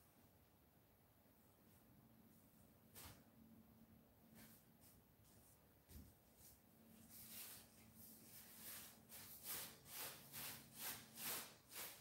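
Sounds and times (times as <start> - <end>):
brush swishing on paper: 4.3 - 12.0.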